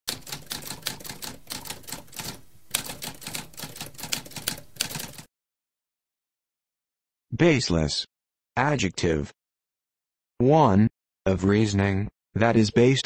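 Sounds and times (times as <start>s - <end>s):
typewriter keys clattering: 0.1s - 5.3s.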